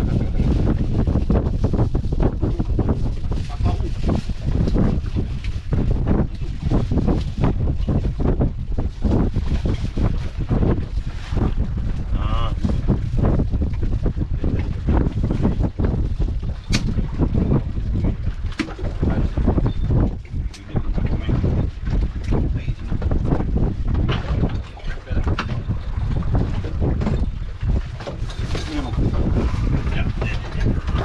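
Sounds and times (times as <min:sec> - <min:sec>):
strong wind buffeting microphone: 0:00.0 - 0:31.0.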